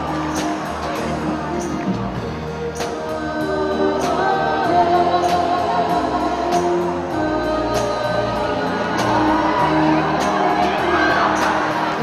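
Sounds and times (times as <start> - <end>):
backing singers holding chords: 0.0 - 12.0
keyboards: 0.0 - 12.0
live band music: 0.0 - 12.0.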